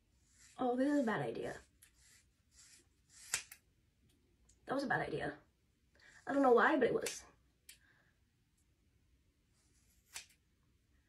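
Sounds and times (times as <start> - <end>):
scissors cutting hair: 3.2 - 3.6, 10.0 - 10.4.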